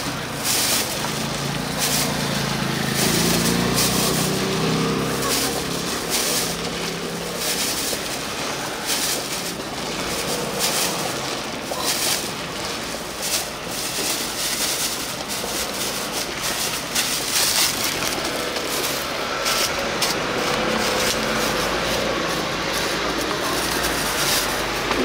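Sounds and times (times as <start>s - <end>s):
plastic bags crinkling: 0.0s - 25.0s
steady background noise: 0.0s - 25.0s.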